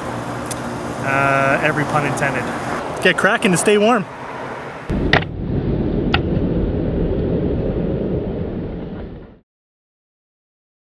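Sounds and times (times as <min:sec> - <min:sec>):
low outdoor rumble: 0:04.9 - 0:09.4.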